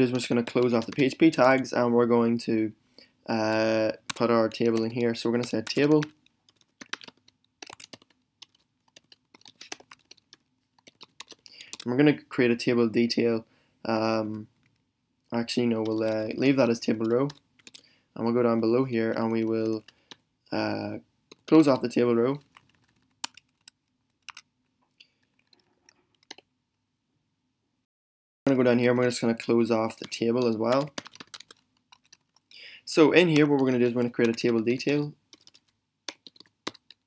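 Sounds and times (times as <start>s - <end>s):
laptop keyboard typing: 0.0s - 1.9s, 3.3s - 12.0s, 15.4s - 26.5s, 29.7s - 32.6s, 33.2s - 37.0s.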